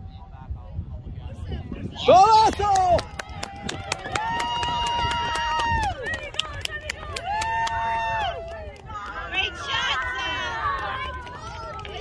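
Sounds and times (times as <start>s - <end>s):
wind rumbling on microphone: 0.0s - 12.0s
voices shouting: 7.3s - 12.0s.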